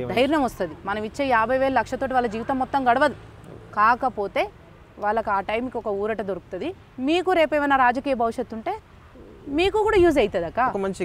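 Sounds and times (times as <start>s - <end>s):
woman speaking: 0.0s - 8.8s, 9.4s - 10.7s.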